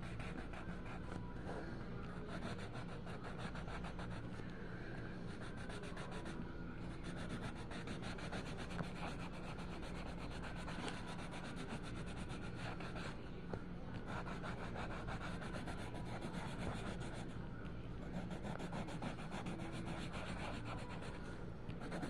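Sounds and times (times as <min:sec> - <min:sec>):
colored pencil scratching on paper: 0:00.0 - 0:01.2, 0:02.1 - 0:04.4, 0:05.3 - 0:13.2, 0:14.0 - 0:17.4, 0:18.0 - 0:21.2, 0:21.8 - 0:22.0.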